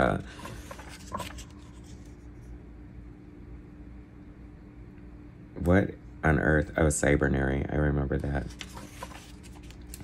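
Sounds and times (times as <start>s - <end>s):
faint steady hum: 0.0s - 10.0s
paper page rustling: 0.3s - 2.2s, 8.2s - 10.0s.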